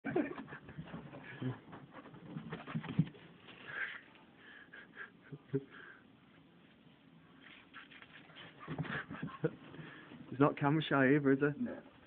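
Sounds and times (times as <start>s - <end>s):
dogs scuffling: 0.4s - 3.8s.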